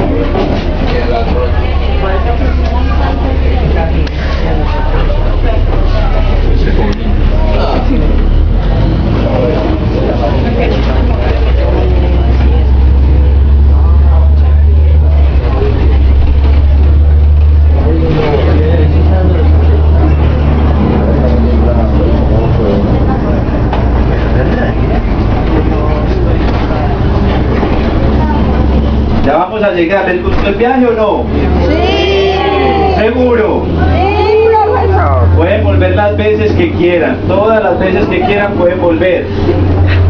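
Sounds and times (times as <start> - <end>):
bus engine rumbling: 0.0 - 40.0
passengers talking quietly: 0.0 - 40.0.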